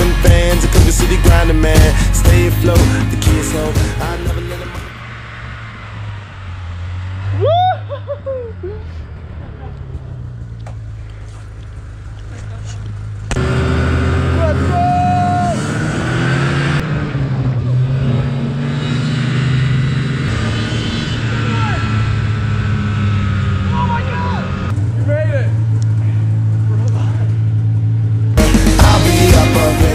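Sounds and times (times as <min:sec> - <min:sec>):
music: 0:00.0 - 0:04.9, 0:28.4 - 0:29.9
snowmobile engine running: 0:00.0 - 0:29.9.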